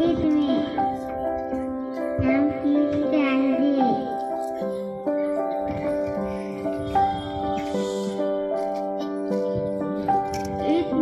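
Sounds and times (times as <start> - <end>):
held chord with wavering melody: 0.0 - 11.0.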